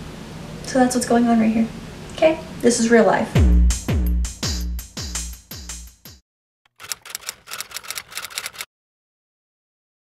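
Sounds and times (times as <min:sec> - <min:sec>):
typewriter key clicks: 0:06.7 - 0:08.7.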